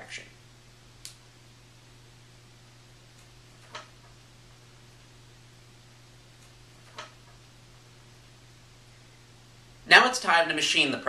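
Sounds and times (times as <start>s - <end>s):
faint low hum: 0.0s - 11.0s
sharp click: 1.0s - 1.2s.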